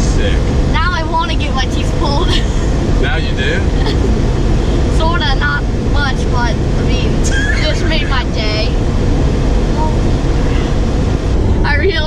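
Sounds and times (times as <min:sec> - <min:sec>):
road and engine noise in car: 0:00.0 - 0:12.0
high excited voice: 0:04.9 - 0:08.8.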